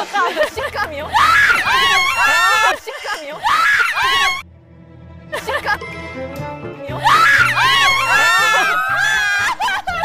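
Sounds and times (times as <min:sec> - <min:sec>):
young woman shrieking: 0:01.1 - 0:02.8, 0:03.4 - 0:04.4, 0:07.0 - 0:09.8.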